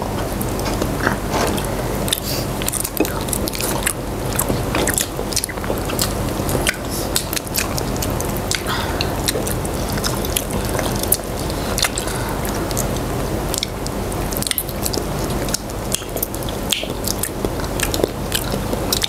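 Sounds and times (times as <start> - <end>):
people chewing and biting: 0.0 - 19.0.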